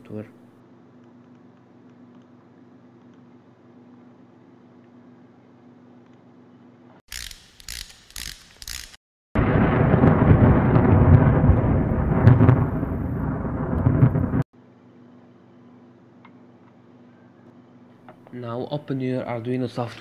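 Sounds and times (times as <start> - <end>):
short noise bursts: 7.1 - 9.0.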